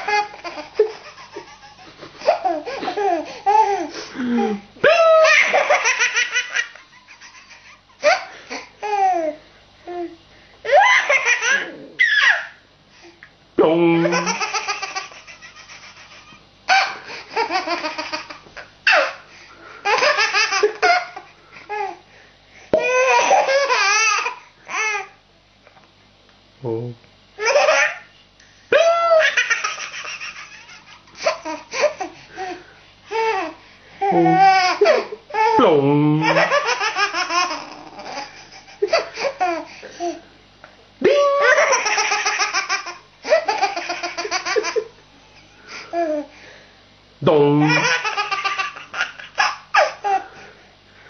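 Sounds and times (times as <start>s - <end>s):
baby laughing: 0.0s - 3.9s, 4.5s - 9.4s, 10.7s - 12.6s, 14.0s - 19.2s, 19.8s - 22.0s, 22.8s - 25.1s, 27.4s - 28.1s, 28.8s - 35.6s, 36.2s - 40.2s, 41.3s - 45.0s, 47.6s - 50.2s
baby squealing: 10.9s - 12.6s.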